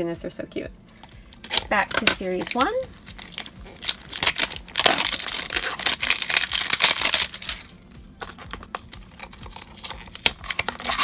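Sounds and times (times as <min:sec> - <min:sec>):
foil wrapper crinkling and tearing: 0:01.4 - 0:07.7, 0:08.4 - 0:11.0.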